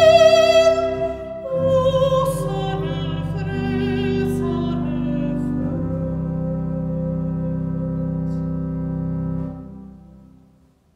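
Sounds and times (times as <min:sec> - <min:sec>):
soprano singing with vibrato: 0:00.0 - 0:07.7
church organ chord: 0:00.0 - 0:10.8.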